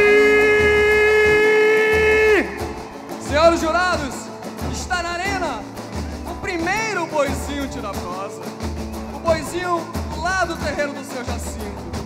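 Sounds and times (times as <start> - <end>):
folk music: 0.0 - 12.0
low drum beat: 0.0 - 12.0.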